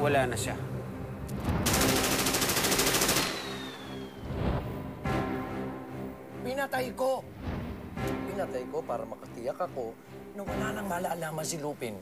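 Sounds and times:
rapid gunfire: 1.6 - 4.0.

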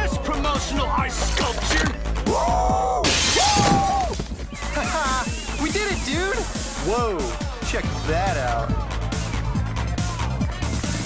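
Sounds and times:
glass window shattering: 3.0 - 4.4
dance music: 4.6 - 11.0.

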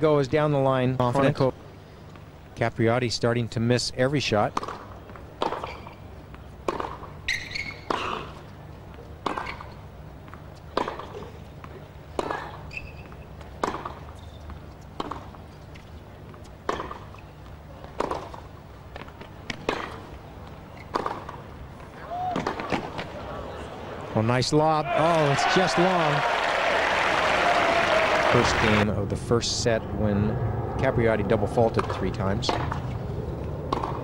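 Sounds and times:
tennis ball hit by rackets: 4.6 - 6.0, 6.6 - 7.1, 9.2 - 9.8, 10.8 - 11.3, 12.2 - 12.6, 13.6 - 14.0, 15.0 - 15.3, 16.6 - 17.1, 17.9 - 20.1, 20.8 - 21.4, 22.2 - 23.1, 31.8 - 33.0, 33.7 - 34.0.

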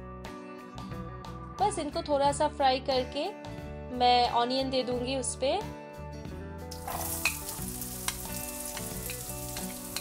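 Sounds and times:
onion sizzling in oil: 6.7 - 10.0.

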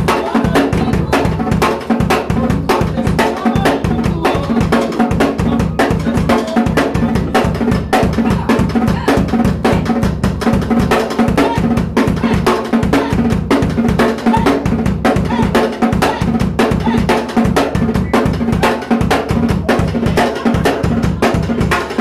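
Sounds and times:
drum kit solo: 0.0 - 22.0.

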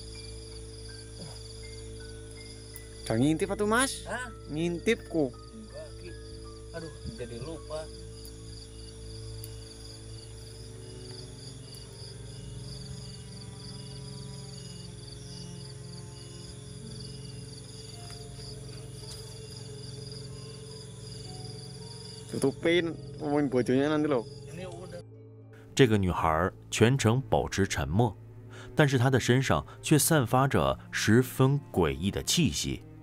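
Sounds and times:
crickets chirping: 0.0 - 25.1
low background music drone: 0.0 - 33.0.

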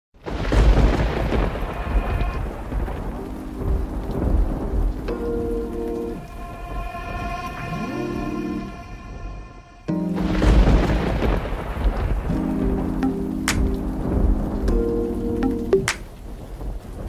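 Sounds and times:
rain: 0.2 - 17.0
thunder rumbling: 0.2 - 17.0
synth intro music: 3.2 - 11.7
rising sweep: 5.1 - 11.5.

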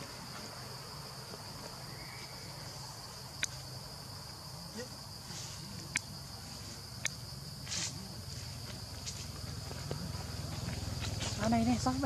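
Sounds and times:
insect chorus: 0.0 - 12.0.

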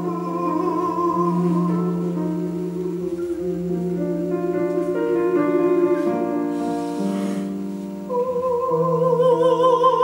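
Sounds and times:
instrumental accompaniment: 0.0 - 9.4.

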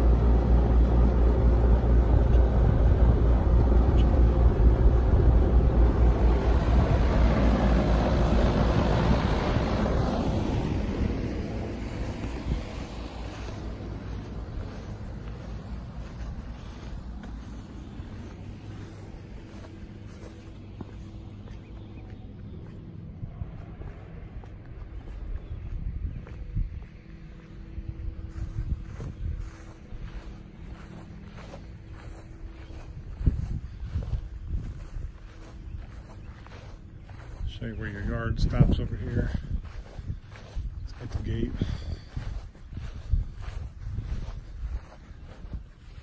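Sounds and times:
air conditioner humming: 0.0 - 46.0
fan air noise: 0.0 - 46.0.

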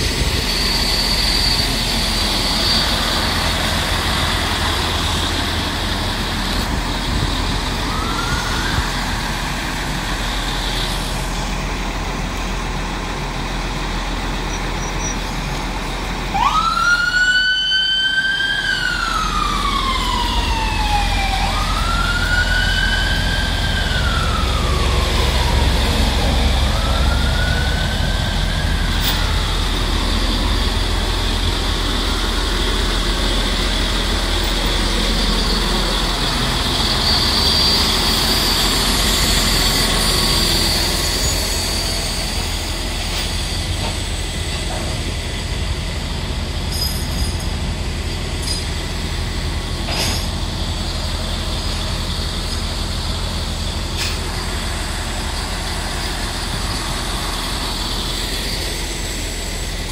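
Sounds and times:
low rumble of street traffic: 0.0 - 59.9
emergency vehicle siren wailing: 3.0 - 10.1, 16.3 - 42.7.

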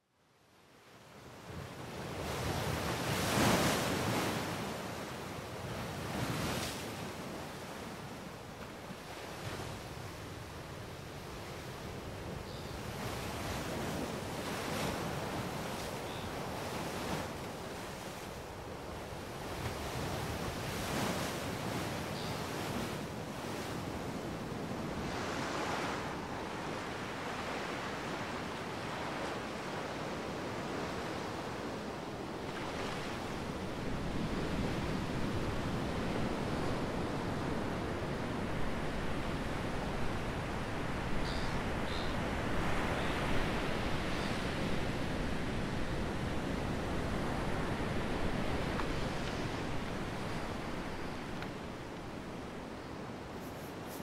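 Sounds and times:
ocean waves breaking on beach: 0.9 - 54.0.

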